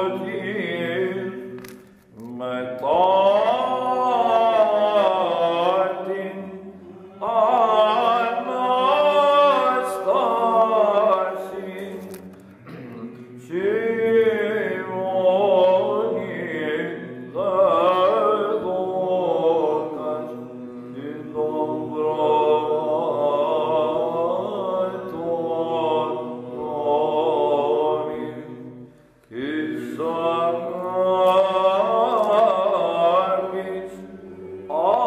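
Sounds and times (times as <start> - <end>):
man singing ornamented chant: 0.0 - 35.0.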